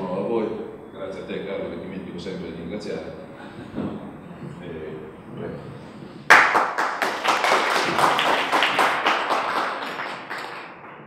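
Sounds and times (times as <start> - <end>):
audience applause: 6.3 - 11.0.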